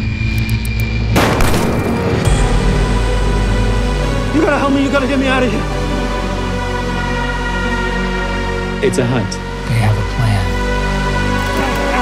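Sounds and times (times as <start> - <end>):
loud impact hit: 1.1 - 2.9.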